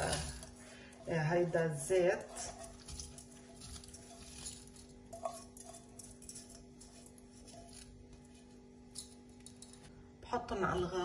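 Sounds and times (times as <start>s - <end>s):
rice grains scraped into saucepan: 0.0s - 8.7s.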